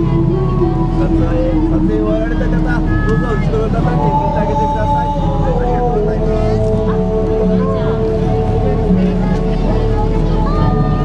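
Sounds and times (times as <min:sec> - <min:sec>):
people talking: 0:00.0 - 0:11.0
slow melody over a pa: 0:00.0 - 0:11.0.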